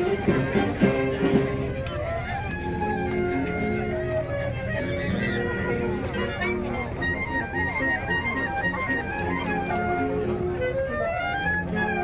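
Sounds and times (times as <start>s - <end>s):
crowd chatter: 0.0s - 12.0s
wind band playing melody: 0.0s - 12.0s.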